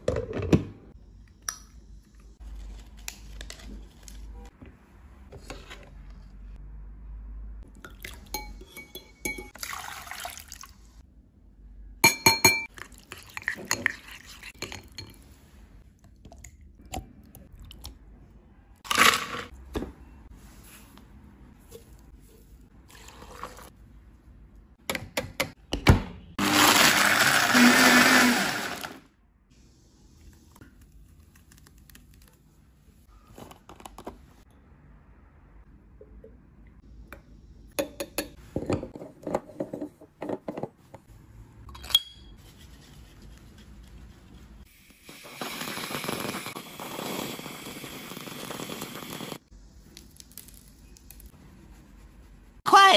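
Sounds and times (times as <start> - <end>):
water pouring through colander: 9.6 - 10.8
blender grinding ice: 26.4 - 29.0, 44.9 - 49.4.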